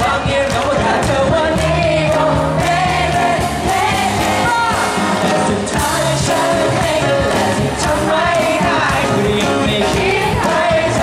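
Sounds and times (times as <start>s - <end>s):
lead vocals singing: 0.0s - 11.0s
live band playing pop song: 0.0s - 11.0s.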